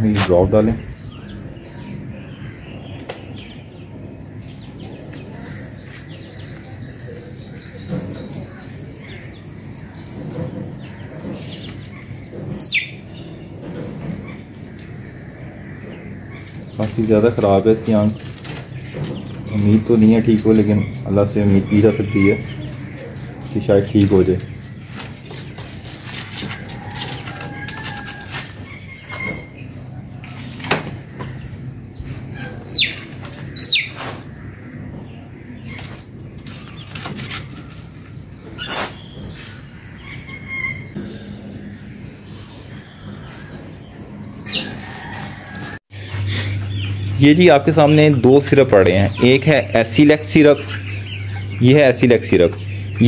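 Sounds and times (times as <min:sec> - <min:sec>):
bird chirping: 0:00.0 - 0:53.0
chicken peeping: 0:02.9 - 0:53.0.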